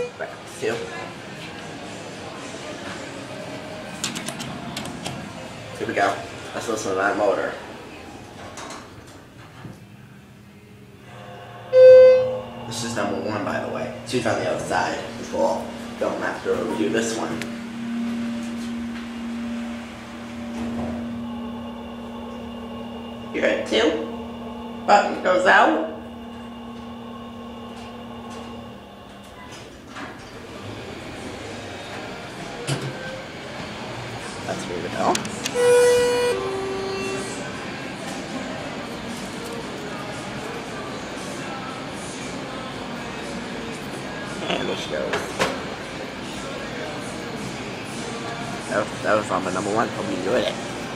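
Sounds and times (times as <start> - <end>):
elevator low hum: 0.0 - 50.9
faint higher tones: 10.7 - 29.6, 35.5 - 37.9
two-note elevator chime: 11.2 - 27.0.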